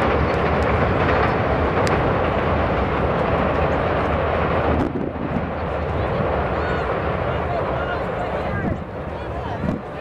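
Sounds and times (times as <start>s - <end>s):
loud steady rumbling: 0.0s - 10.0s.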